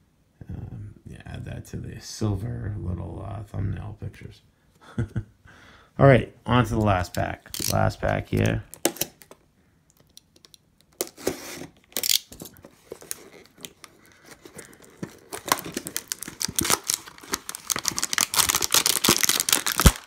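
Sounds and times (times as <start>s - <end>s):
plastic wrapper crinkling: 7.5s - 9.4s, 10.0s - 20.0s
cardboard tearing: 11.0s - 20.0s.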